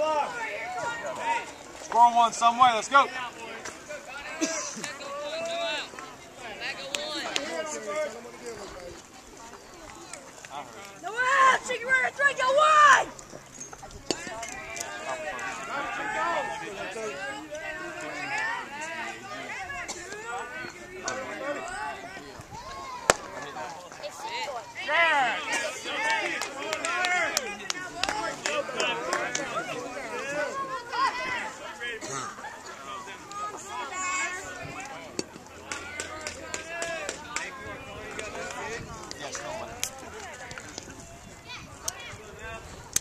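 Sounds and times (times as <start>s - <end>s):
voices talking: 0.0s - 43.0s.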